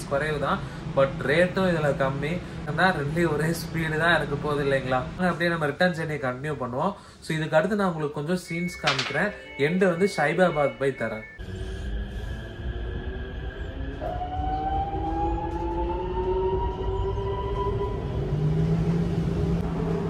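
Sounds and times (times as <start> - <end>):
rising motor whine: 11.4 - 20.0.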